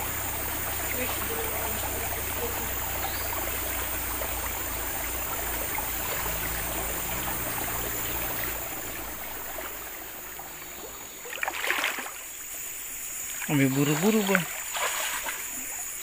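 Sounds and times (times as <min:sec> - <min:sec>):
stream flowing and trickling: 0:00.0 - 0:16.0.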